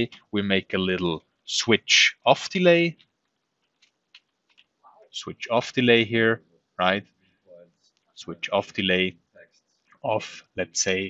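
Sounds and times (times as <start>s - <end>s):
faint keyboard clicks: 3.0s - 4.8s.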